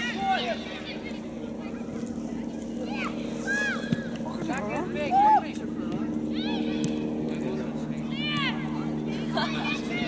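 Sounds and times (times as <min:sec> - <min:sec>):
people shouting and calling: 0:00.0 - 0:02.0, 0:02.8 - 0:07.2, 0:08.0 - 0:10.0
low mechanical hum: 0:00.0 - 0:10.0.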